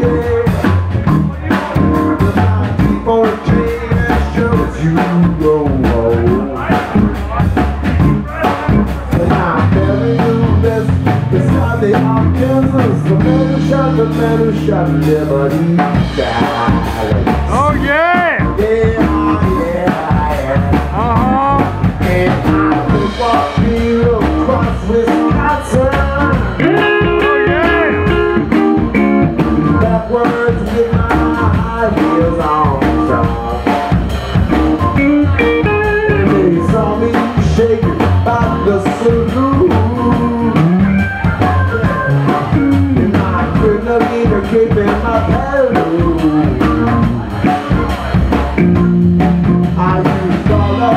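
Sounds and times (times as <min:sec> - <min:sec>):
drum kit beat: 0:00.0 - 0:50.9
electric guitar: 0:00.0 - 0:50.9.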